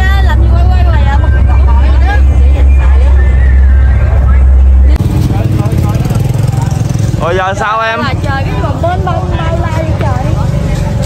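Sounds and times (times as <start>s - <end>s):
boat engine drone: 0.0s - 9.7s.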